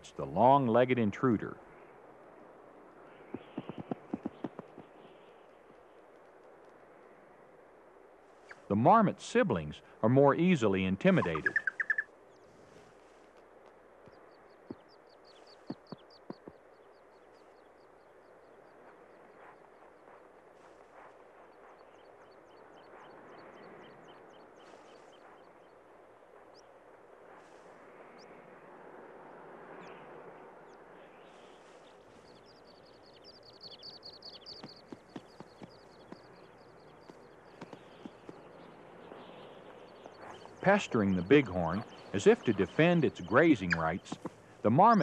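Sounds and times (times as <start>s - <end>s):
small birds chirping: 0.0s - 7.2s, 8.3s - 45.0s.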